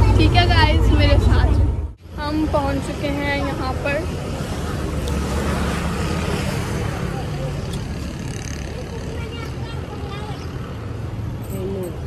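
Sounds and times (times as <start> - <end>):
street noise rumble: 0.0 - 12.0.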